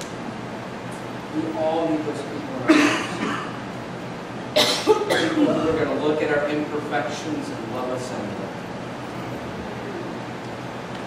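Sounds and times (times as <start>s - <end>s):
short cough: 2.7s - 3.6s, 4.6s - 5.6s.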